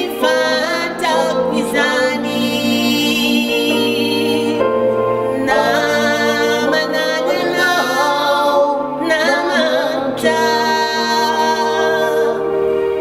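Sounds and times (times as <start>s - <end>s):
woman and man singing: 0.0s - 4.7s, 5.3s - 12.5s
keyboard chords: 0.0s - 13.0s.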